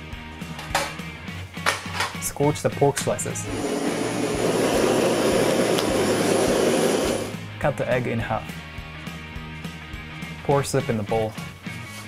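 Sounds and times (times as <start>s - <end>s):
gas torch hissing: 3.4s - 7.4s.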